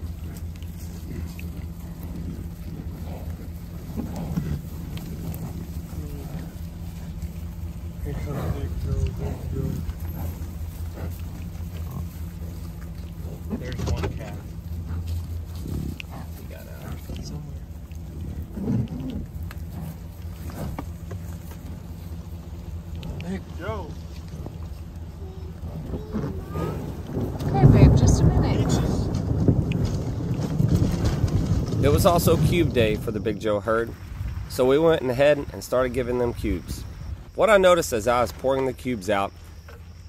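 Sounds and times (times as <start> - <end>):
bison grunting: 0.0 - 39.8
steady low hum: 0.0 - 40.0.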